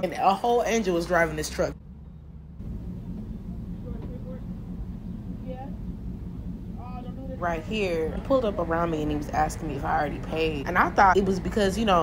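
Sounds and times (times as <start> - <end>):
low rumble inside a car: 0.2 - 12.0.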